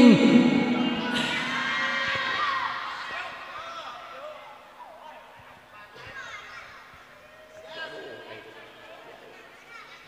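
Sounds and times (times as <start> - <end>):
audience cheering and calling out: 0.0 - 4.2.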